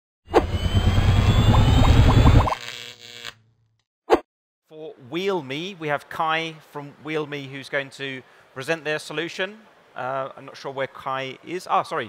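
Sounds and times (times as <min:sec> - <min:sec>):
rising sweep: 0:00.3 - 0:02.6
short electronic blips: 0:00.3 - 0:03.4
bass rumble: 0:00.4 - 0:02.5.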